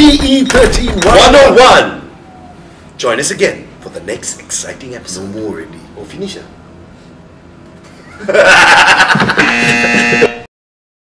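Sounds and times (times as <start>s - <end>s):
man laughing loudly: 7.9s - 10.4s
buzzer sound effect: 9.4s - 10.5s.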